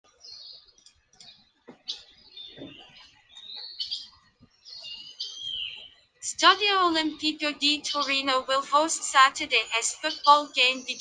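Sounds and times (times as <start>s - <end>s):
bird chirping and whistling: 4.8s - 5.9s.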